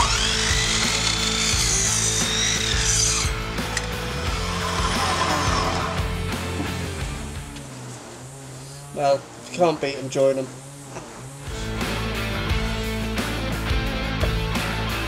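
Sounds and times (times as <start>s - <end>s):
mitre saw cutting timber: 0.0s - 12.1s.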